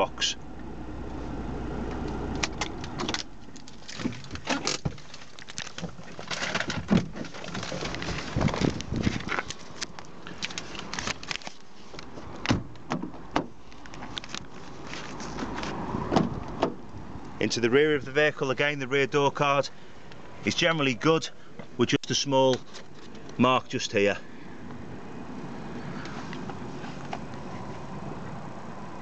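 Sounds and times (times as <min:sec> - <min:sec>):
clicks knocks and rustles: 0:02.0 - 0:16.8
car door: 0:12.3 - 0:13.6, 0:15.4 - 0:16.8.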